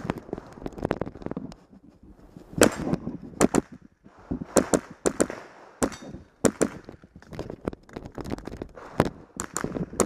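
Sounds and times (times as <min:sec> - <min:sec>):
rifle shots: 0:04.5 - 0:06.9.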